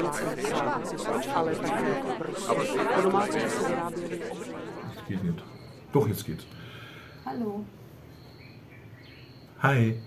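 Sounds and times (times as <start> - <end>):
babble of chatter: 0.0 - 6.5.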